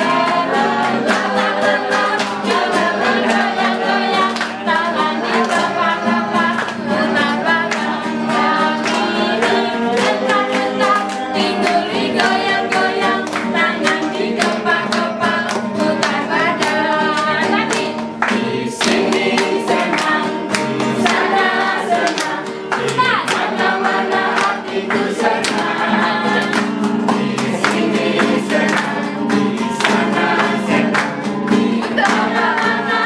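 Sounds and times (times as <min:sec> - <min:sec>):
acoustic guitar: 0:00.0 - 0:33.0
group singing: 0:00.0 - 0:33.0
hands clapping along: 0:00.0 - 0:33.0.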